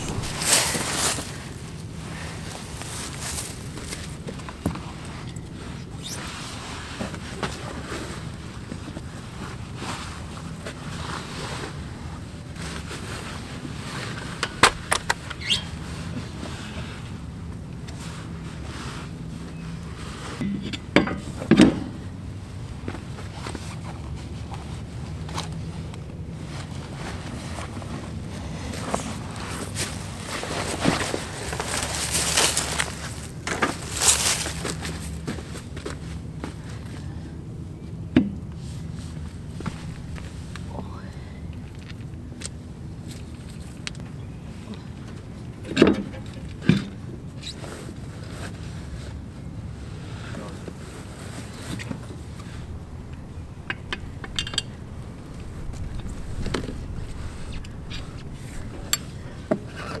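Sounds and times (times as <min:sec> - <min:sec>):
steady low rumble: 0:00.0 - 0:11.1, 0:19.9 - 0:45.6, 0:49.2 - 1:00.0
metal clattering: 0:52.5 - 1:00.0
metal knocks and clanks: 0:52.9 - 1:00.0.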